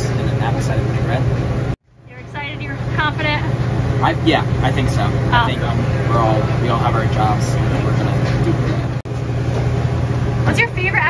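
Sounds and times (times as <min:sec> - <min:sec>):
man talking: 0:00.0 - 0:01.4, 0:04.0 - 0:08.5
fan low drone: 0:00.0 - 0:11.0.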